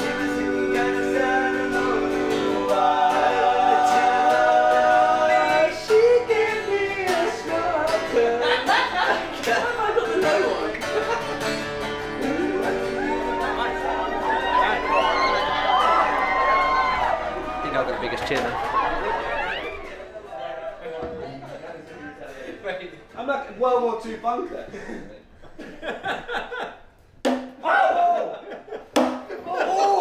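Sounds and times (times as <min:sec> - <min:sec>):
men singing long notes: 0:00.0 - 0:11.2, 0:12.1 - 0:17.4
acoustic guitars strummed: 0:00.0 - 0:20.1.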